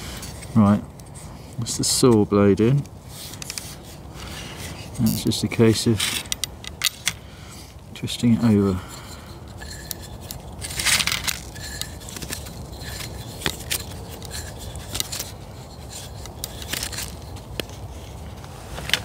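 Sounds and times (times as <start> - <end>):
wooden stick scraping and clicking: 2.8 - 7.2, 8.4 - 19.0.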